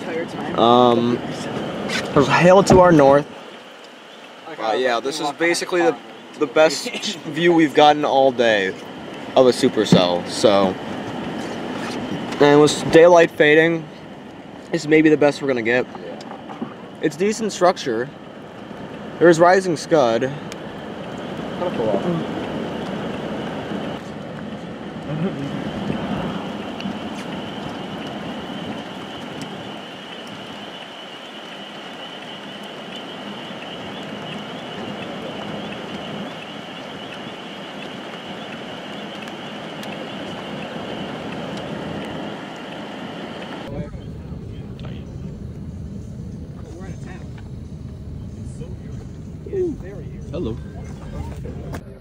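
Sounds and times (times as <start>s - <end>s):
wind: 0.0s - 52.0s
low rumble: 43.6s - 52.0s.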